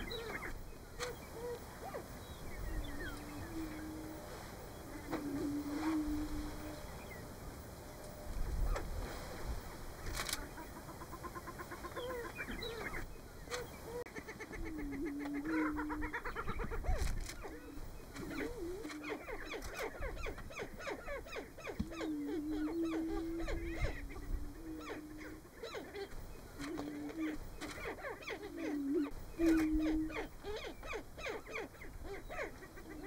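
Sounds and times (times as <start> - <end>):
low booming bird calls: 0.0 - 7.3, 10.1 - 33.0.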